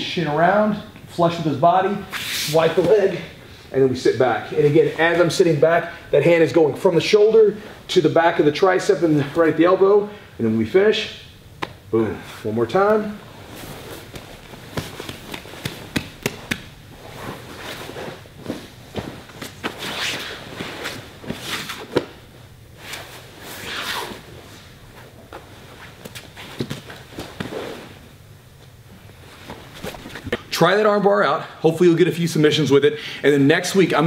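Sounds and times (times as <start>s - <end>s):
cotton clothing rustling: 12.8s - 22.2s
bodies thumping on a mat: 14.0s - 17.6s.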